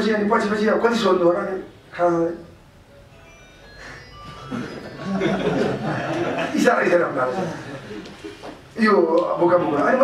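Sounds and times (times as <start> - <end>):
quiet tune of high single notes: 2.4 - 6.2
man talking: 6.4 - 7.8, 8.8 - 10.0.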